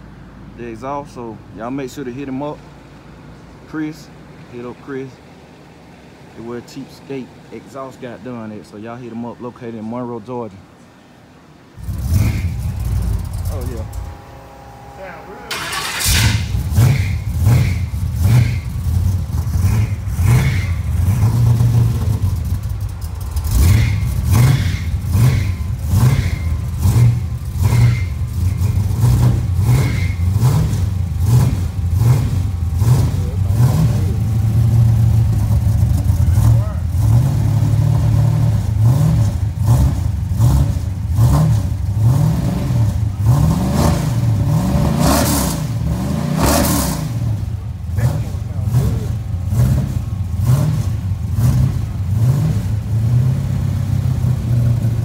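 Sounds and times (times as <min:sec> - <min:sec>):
car engine revving: 0:11.7 - 0:55.0.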